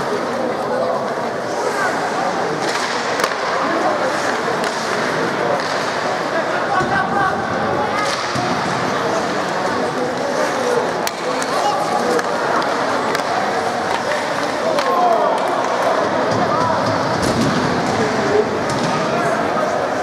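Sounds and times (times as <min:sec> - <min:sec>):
hockey sticks clicking on puck: 0:02.5 - 0:06.4, 0:08.0 - 0:19.1.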